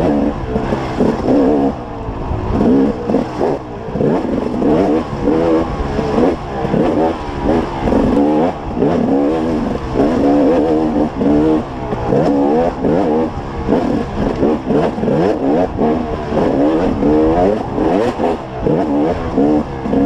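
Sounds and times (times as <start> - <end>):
dirt bike engine revving: 0.0 - 20.0.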